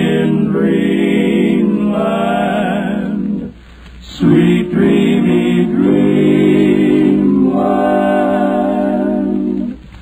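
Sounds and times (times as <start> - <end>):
male quartet singing close harmony: 0.0 - 9.8.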